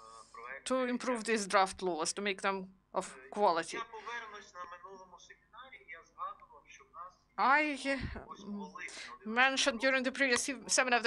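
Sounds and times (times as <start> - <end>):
surrounding speech: 0.0 - 11.0.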